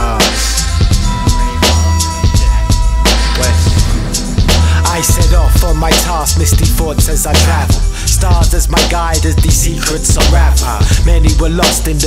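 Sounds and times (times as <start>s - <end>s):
man rapping over a beat: 0.0s - 2.0s, 3.1s - 12.0s
deep bass notes: 0.0s - 12.0s
hi-hat ticks: 4.5s - 12.0s.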